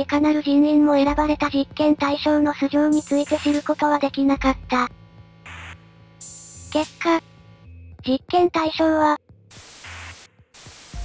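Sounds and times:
quiet background music: 0:00.0 - 0:11.0
static hiss censor bleep: 0:09.6 - 0:11.0.

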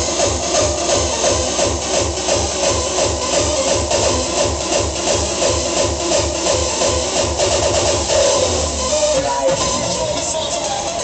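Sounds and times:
hardcore electronic dance music: 0:00.0 - 0:11.0.

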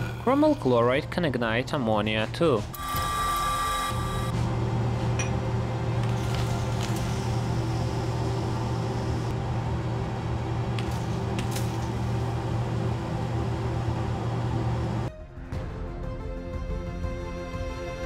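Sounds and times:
low mechanical hum: 0:00.0 - 0:15.1.

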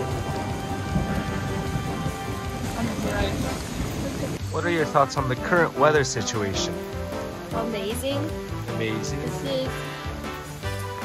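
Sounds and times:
heavy low rumble: 0:00.0 - 0:05.3
music with sustained notes: 0:00.0 - 0:11.0
steady rain: 0:00.0 - 0:11.0.

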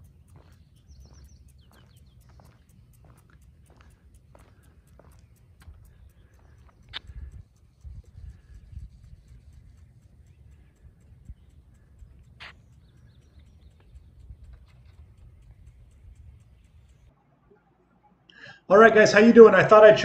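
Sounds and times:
wind rumbling on microphone: 0:00.0 - 0:17.1.

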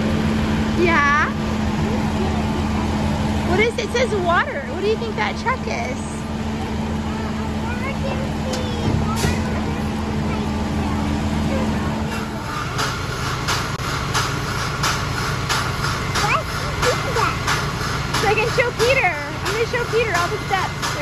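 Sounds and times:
heavy diesel engine running: 0:00.0 - 0:21.0
machine hum: 0:00.0 - 0:21.0
sharp repeating knocks: 0:12.2 - 0:21.0.

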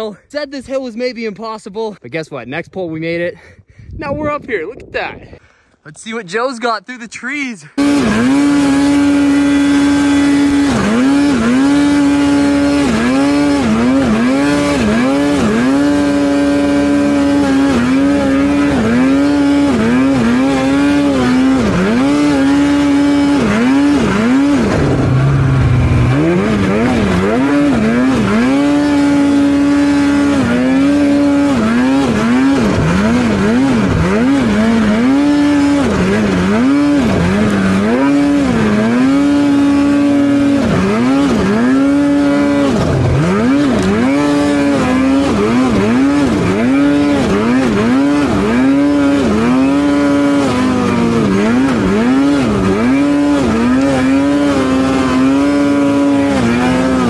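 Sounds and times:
snowmobile engine revving: 0:06.0 - 0:57.0.

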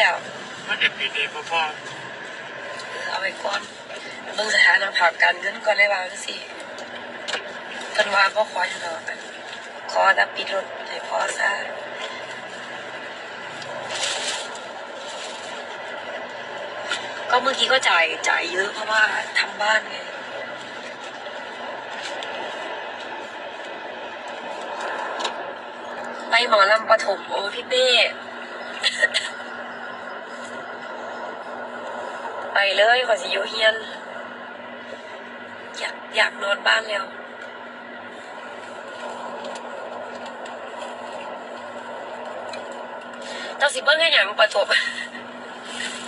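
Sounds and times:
faint hum: 0:00.0 - 0:46.0.

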